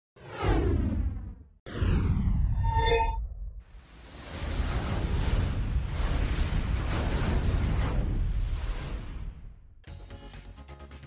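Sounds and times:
descending whoosh effects: 1.7 - 6.9.

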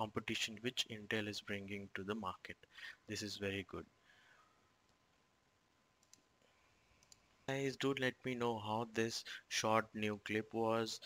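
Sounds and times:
computer mouse clicks: 6.0 - 7.3.

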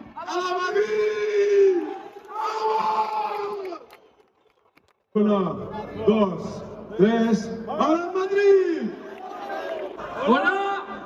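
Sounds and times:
man shouting into a microphone: 0.0 - 3.8, 5.6 - 9.1, 10.1 - 11.0.

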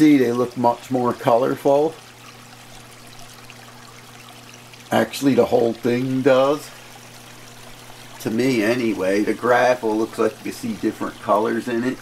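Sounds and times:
aquarium water trickling: 0.0 - 12.0
low steady hum: 0.0 - 12.0.

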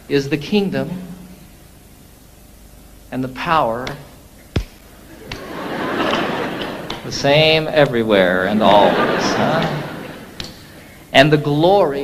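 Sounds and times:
background hiss: 0.0 - 12.0
person speaking: 5.1 - 12.0.

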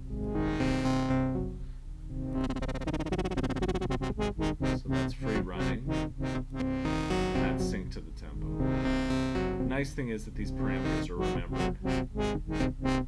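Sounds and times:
synthesizer wobble pattern: 0.0 - 13.0.

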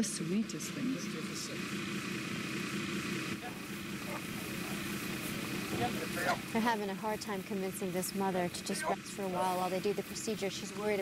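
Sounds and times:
engine drone: 0.0 - 11.0.

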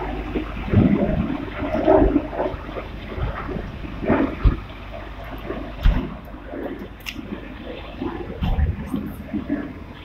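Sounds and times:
dull thump: 5.8 - 6.2.

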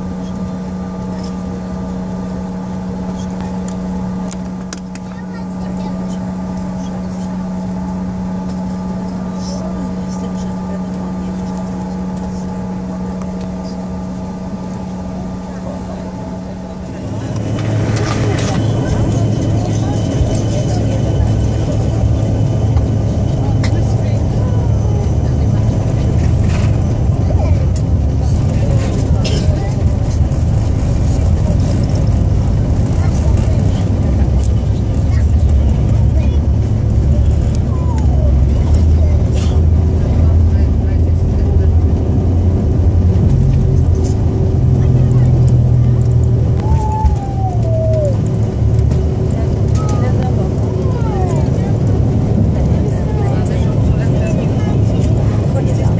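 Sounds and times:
jet engines rumbling: 0.0 - 55.9
wheels rumbling on runway: 0.0 - 55.9.

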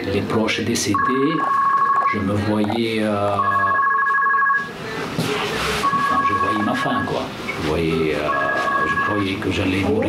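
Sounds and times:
man speaking: 0.0 - 3.9, 6.1 - 10.0.

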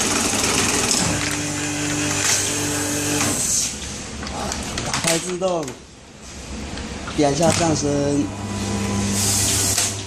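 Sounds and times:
machine motor hum: 7.4 - 10.0.

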